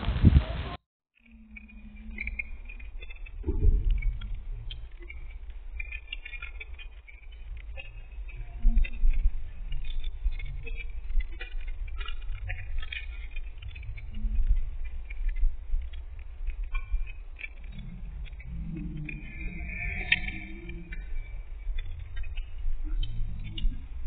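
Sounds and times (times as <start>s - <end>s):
small clicks: 1.2s - 24.0s
wind buffeting microphone: 1.5s - 24.0s.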